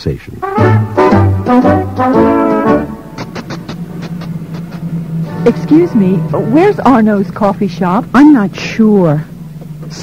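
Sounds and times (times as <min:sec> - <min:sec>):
low traffic hum: 0:00.0 - 0:10.0
footsteps clicking on pavement: 0:03.2 - 0:04.9.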